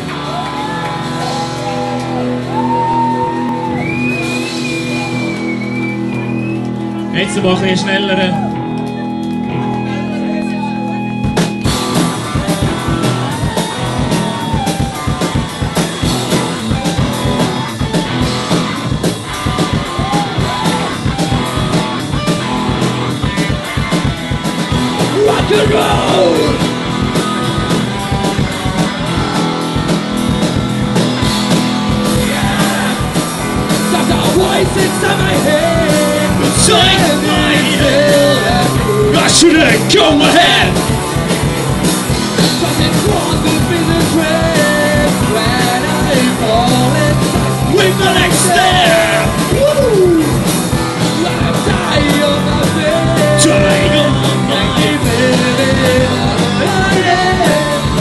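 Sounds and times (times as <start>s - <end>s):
bass guitar: 0.0s - 58.0s
drum kit beat: 0.0s - 58.0s
electric guitar chords: 0.0s - 58.0s
live rock band playing: 0.0s - 58.0s.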